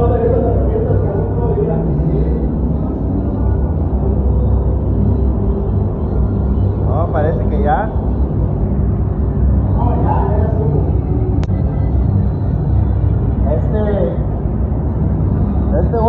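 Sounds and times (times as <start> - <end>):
spray booth fans rumbling: 0.0 - 16.0.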